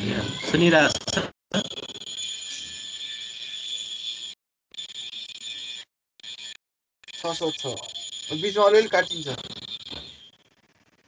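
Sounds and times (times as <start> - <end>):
faint high-pitched tone: 7.2 - 10.3.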